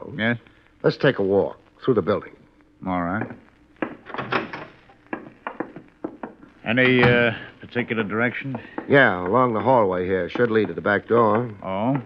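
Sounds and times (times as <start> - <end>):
footsteps walking: 4.8 - 7.4.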